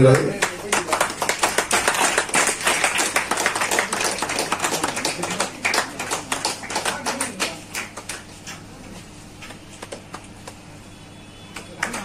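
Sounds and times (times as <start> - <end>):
crowd applauding: 0.0 - 8.4, 11.6 - 12.0.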